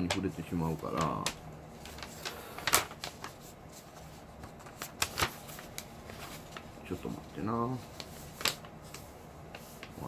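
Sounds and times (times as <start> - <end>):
paper leaflet rustling and crackling: 0.0 - 10.0.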